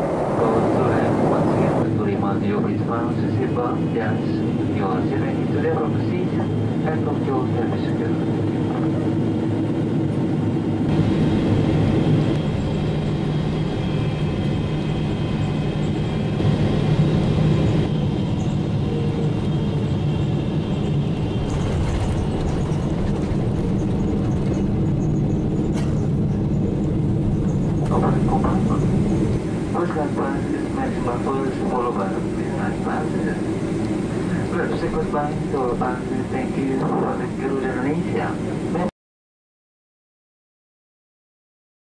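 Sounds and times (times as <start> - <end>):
airliner cabin engine rumble: 0.0 - 38.9.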